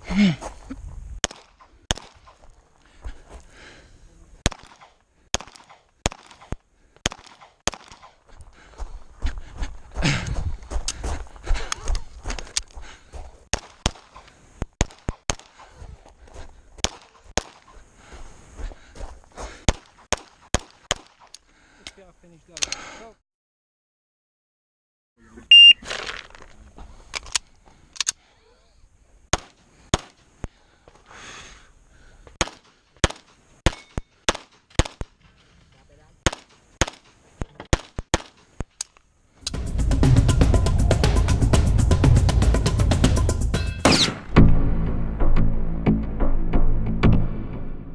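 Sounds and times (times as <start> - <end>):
pistol shots: 4.4 - 8.2, 32.4 - 35.2, 36.2 - 38.4, 43.8 - 44.3.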